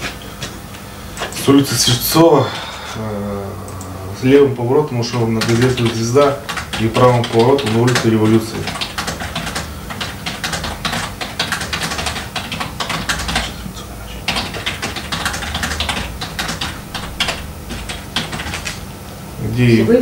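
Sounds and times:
typing on computer keyboard: 5.1 - 18.8.

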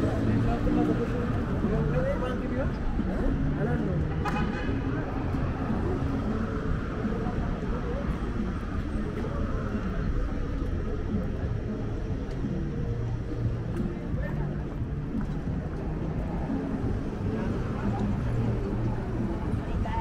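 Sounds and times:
passers-by talking: 0.0 - 20.0
road traffic rumble: 0.0 - 20.0.

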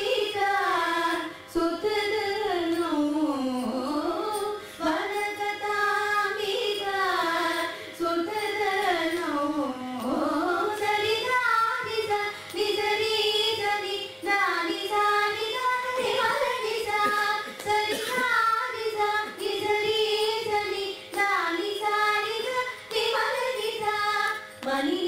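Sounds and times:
women singing together: 0.0 - 25.0.

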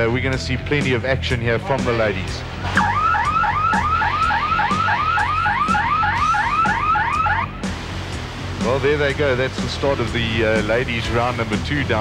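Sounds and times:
electronic siren whooping: 2.7 - 7.7.

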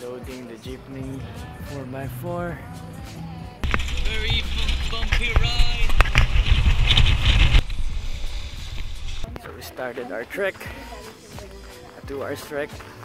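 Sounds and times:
passengers' voices: 3.6 - 6.6
vehicle rumbling over rocks: 3.6 - 9.3.

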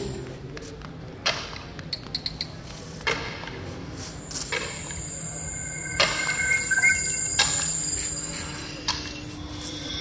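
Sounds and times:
steady high electronic tone: 4.0 - 10.0
chirping electronic tones: 4.2 - 8.7.

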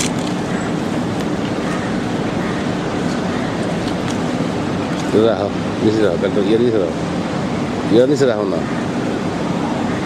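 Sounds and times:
background noise: 0.0 - 10.0
mechanical hum: 0.0 - 10.0.

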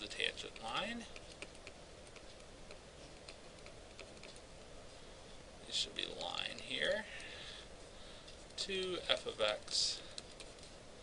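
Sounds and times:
stylus tapping on tablet: 0.5 - 4.7.

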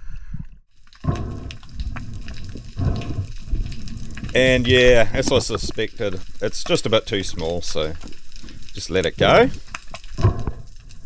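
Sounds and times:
sea water washing: 0.7 - 11.0
muffled underwater rushing: 0.8 - 6.8, 7.4 - 11.0.

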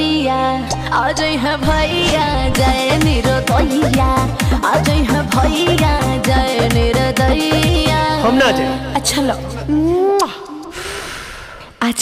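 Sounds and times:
backing music: 0.6 - 10.0.

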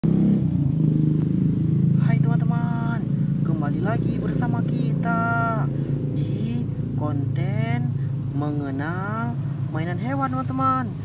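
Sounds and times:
low motor drone: 0.0 - 11.0.

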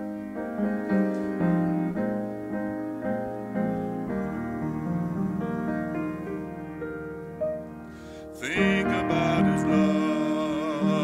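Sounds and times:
grand piano playing hymn chords: 0.0 - 11.0.

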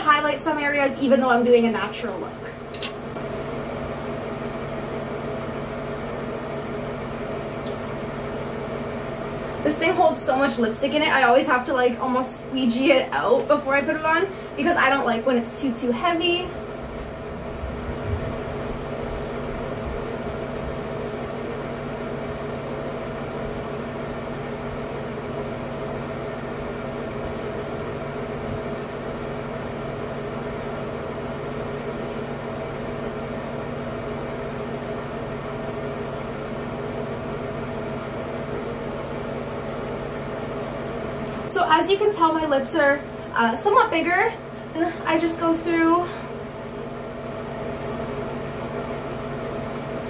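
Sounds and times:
ceiling fan motor hum: 0.0 - 50.0.

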